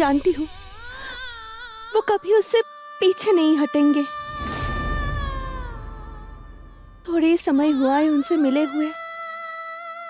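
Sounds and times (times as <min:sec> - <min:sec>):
low rumble: 0:04.1 - 0:07.8.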